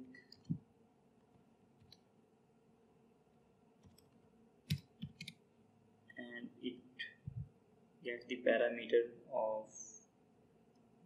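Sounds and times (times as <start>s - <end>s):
computer keyboard keystrokes: 4.7s - 5.4s.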